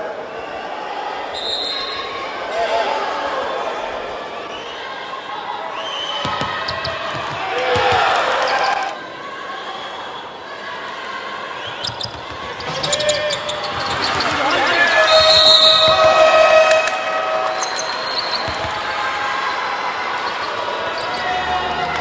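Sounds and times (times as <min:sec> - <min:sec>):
crowd din: 0:10.3 - 0:22.0
basketball bouncing on hardwood: 0:18.4 - 0:18.8.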